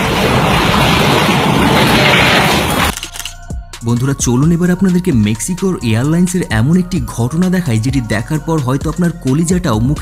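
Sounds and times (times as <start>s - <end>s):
storm wind rushing: 0.0s - 2.9s
background music: 2.9s - 10.0s.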